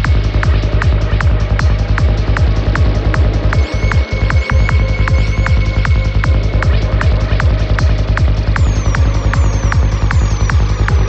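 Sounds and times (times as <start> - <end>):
four-on-the-floor kick drum: 0.0 - 11.0
growling synth texture: 0.0 - 11.0
rolling bassline: 0.0 - 11.0.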